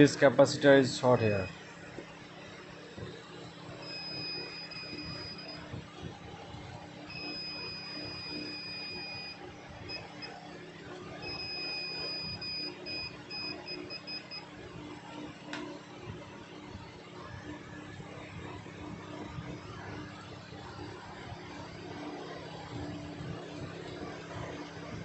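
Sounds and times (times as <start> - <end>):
multimeter continuity buzzer beeping: 3.7 - 5.7, 7.1 - 10.4, 11.2 - 14.5.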